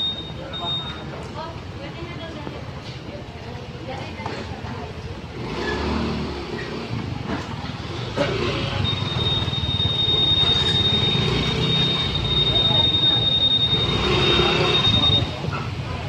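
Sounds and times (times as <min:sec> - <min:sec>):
scooter engines running: 0:00.0 - 0:16.0
steady high-pitched tone: 0:08.8 - 0:15.4.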